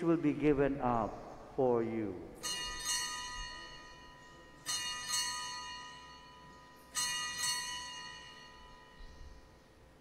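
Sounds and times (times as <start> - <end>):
altar bells ringing: 2.4 - 10.0.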